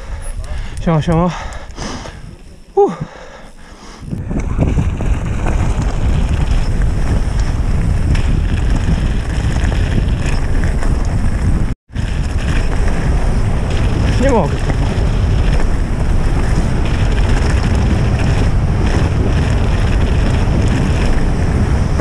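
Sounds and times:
wind buffeting microphone: 0.0 - 22.0
tyres rumbling on loose gravel: 4.1 - 22.0.

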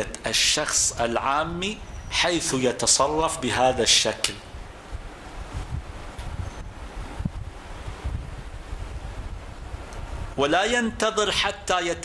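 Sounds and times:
low microphone and room rumble: 0.0 - 12.0.

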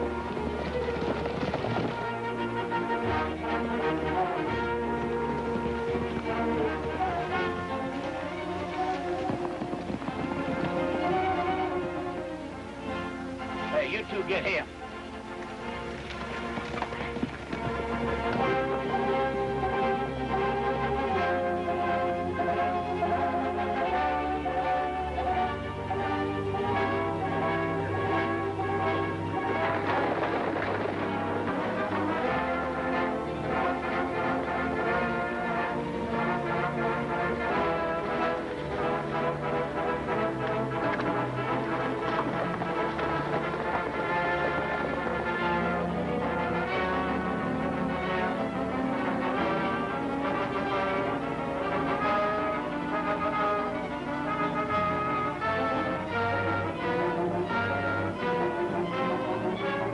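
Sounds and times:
orchestral music with brass: 0.0 - 59.9.

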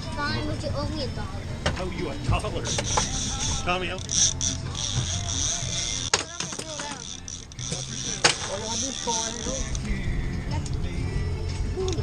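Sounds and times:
outboard motor running: 0.0 - 11.4.

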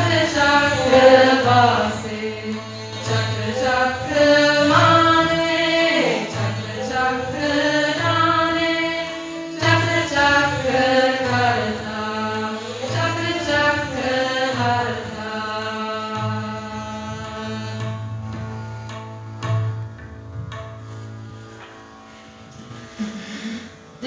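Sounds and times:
women singing a mantra: 0.0 - 17.8
bowed string instruments: 0.0 - 24.0
low drone: 22.5 - 24.0.

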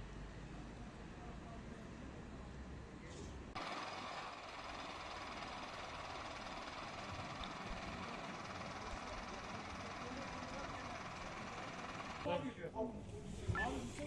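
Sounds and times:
vehicle engine idling: 3.5 - 12.3
faint voices: 8.6 - 14.0.

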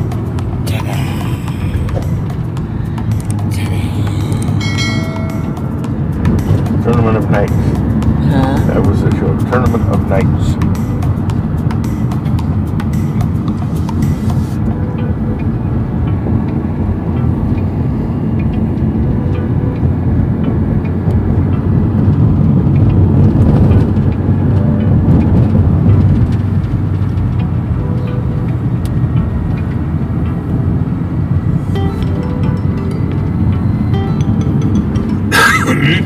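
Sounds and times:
car road and engine noise: 0.0 - 36.0.

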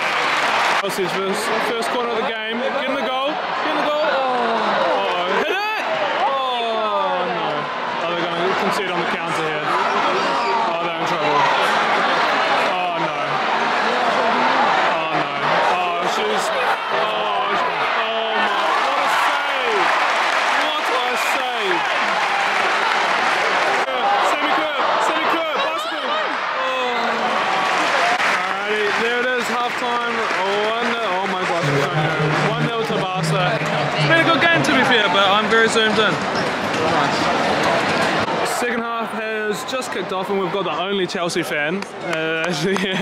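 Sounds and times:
crowd applause: 0.0 - 38.7, 41.7 - 43.0
crowd voices calling and chattering: 0.0 - 43.0.

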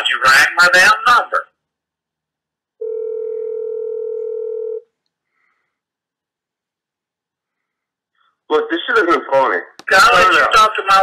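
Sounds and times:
steady telephone line tone: 2.8 - 4.9.

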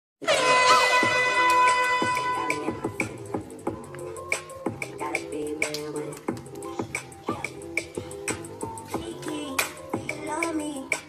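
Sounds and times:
air horn blast: 0.2 - 3.0
music track: 0.2 - 11.0.

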